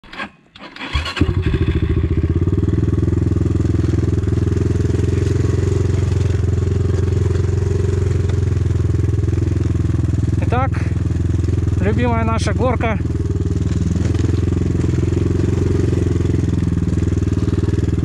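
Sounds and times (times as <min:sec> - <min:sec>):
motorcycle engine running: 0:00.8 - 0:18.0.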